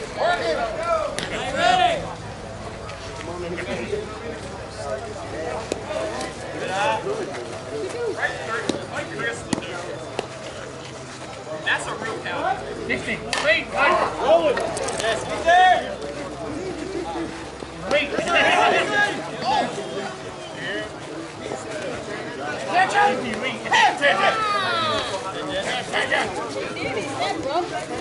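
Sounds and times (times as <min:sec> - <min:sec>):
players shouting and chatter: 0:00.0 - 0:28.0.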